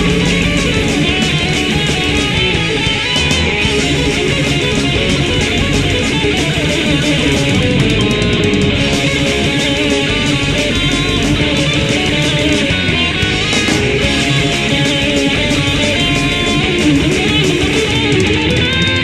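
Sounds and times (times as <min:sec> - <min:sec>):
heavy metal band playing: 0:00.0 - 0:19.0.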